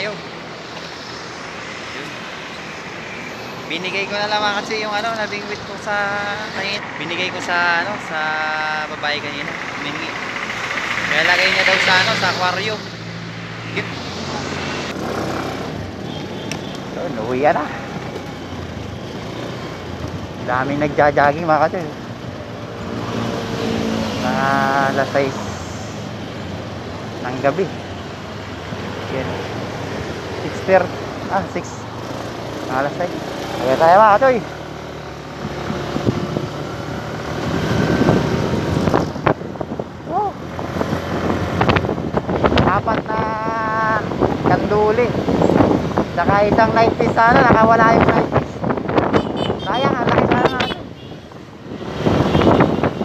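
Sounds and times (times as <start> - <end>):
road and wind noise: 0.0 - 53.0
motorcycle engine hum: 8.3 - 53.0
wind noise on microphone: 35.3 - 53.0.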